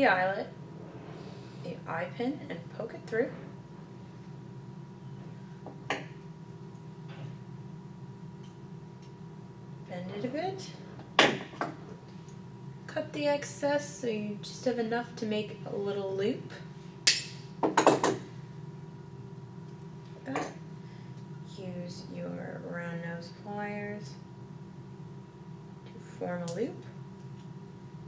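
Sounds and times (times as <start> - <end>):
low room hum: 0.0 - 28.0.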